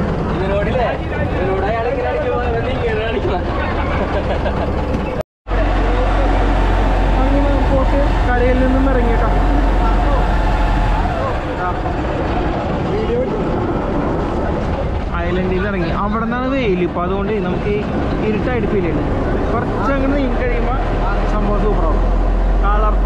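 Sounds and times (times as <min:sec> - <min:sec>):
people talking: 0:00.0 - 0:10.4, 0:11.1 - 0:23.0
boat engine droning: 0:00.0 - 0:23.0.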